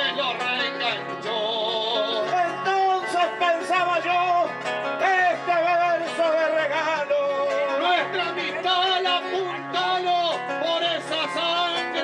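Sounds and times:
person singing folk song: 0.0 - 12.0
plucked guitar: 0.0 - 12.0.

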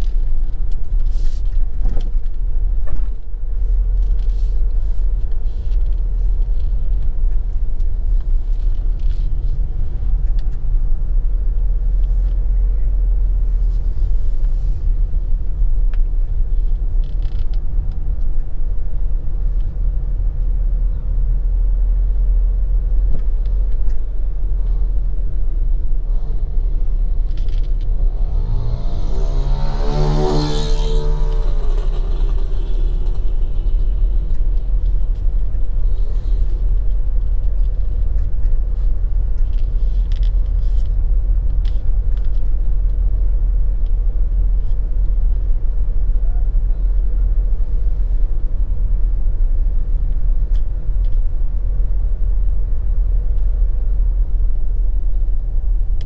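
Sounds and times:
vehicle engine rumble: 0.0 - 56.0.

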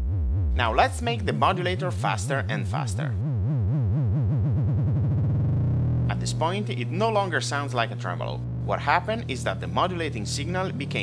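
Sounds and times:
synthesizer tone with vibrato: 3.2 - 11.0.

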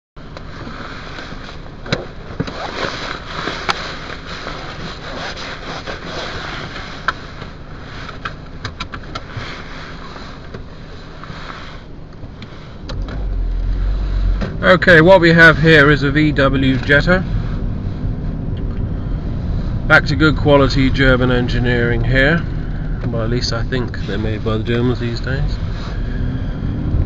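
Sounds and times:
car engine humming: 0.2 - 27.0
deep rumble: 11.9 - 27.0.

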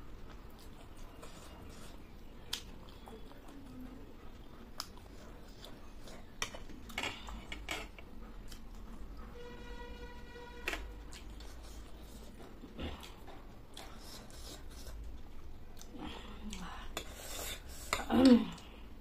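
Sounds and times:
steady high tone: 9.3 - 11.0.

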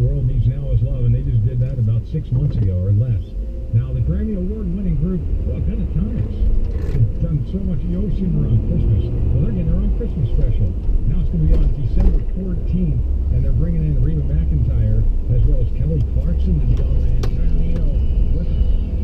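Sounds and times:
person talking: 0.0 - 18.6
car driving rumble: 0.0 - 19.0.

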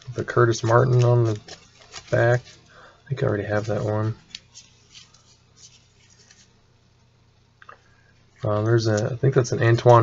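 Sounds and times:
trading cards clicking and rustling: 0.0 - 6.5
low steady hum: 0.0 - 10.0.

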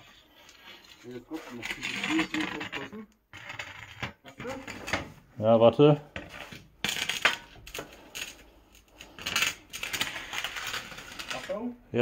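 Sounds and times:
metal scraping: 0.0 - 5.2.

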